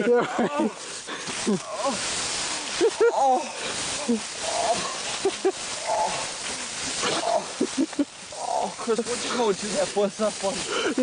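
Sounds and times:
steady hiss: 0.0 - 11.0
man groaning and gasping: 1.4 - 2.1.

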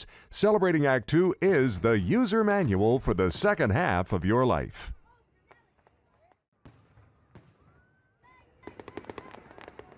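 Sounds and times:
crackling firework pops: 8.6 - 9.9.

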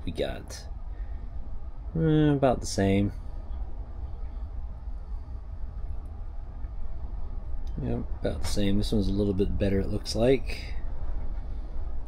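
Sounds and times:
faint hiss: 0.0 - 12.0
low unsteady rumble: 0.0 - 12.0.

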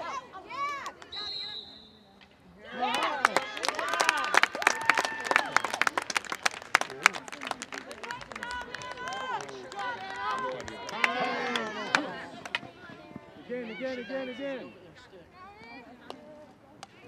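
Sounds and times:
people cheering: 2.7 - 14.7
spectators clapping: 2.8 - 12.7.

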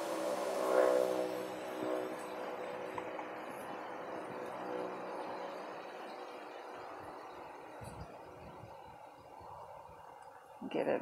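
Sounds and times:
drone of held tones: 0.0 - 10.6.

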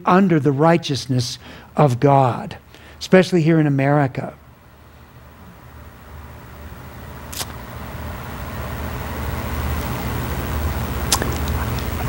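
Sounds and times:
sharp click: 7.3 - 7.6.

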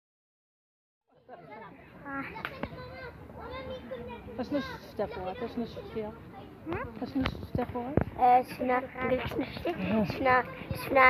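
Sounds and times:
children chattering: 1.1 - 11.0.

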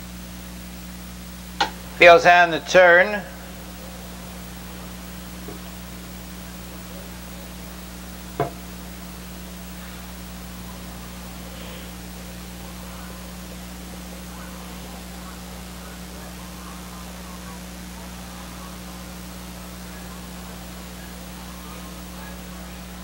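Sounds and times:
low electrical hum: 0.0 - 23.0
steady hiss: 0.0 - 23.0
faint distant voices: 1.5 - 23.0.

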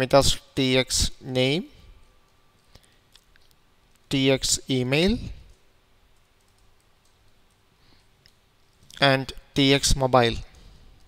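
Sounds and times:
person speaking: 0.0 - 1.8, 4.1 - 5.5, 8.9 - 10.6
computer keyboard keystrokes: 5.4 - 9.0.

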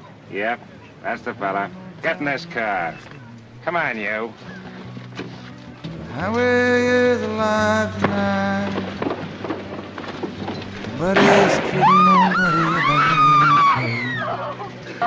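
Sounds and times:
sharp bang: 8.9 - 12.2
loud shouting: 11.1 - 15.0
woman screaming: 11.7 - 14.7.

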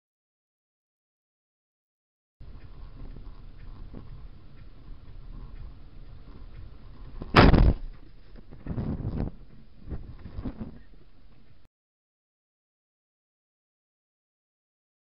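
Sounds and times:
thuds and crunches: 7.3 - 7.9.

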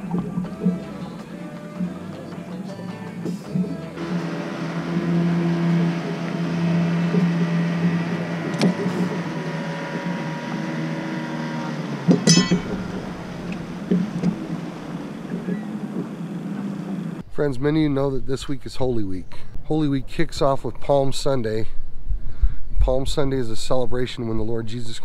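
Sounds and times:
boat motor humming: 0.0 - 17.2
clatter of clinks: 12.2 - 13.0.

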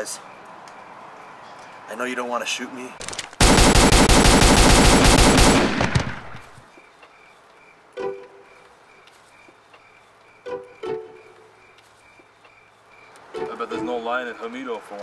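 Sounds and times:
rapid handgun fire: 3.0 - 6.6.

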